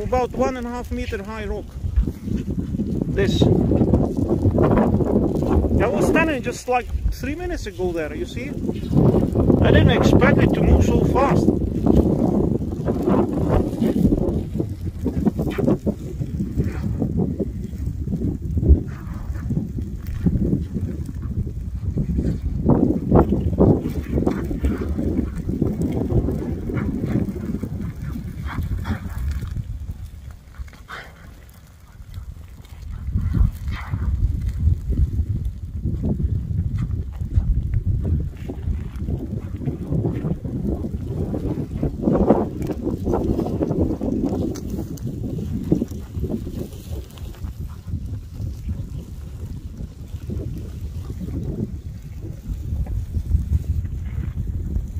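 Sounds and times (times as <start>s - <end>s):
lava crackling and popping: 0.0s - 54.9s
low rumbling: 0.0s - 54.9s.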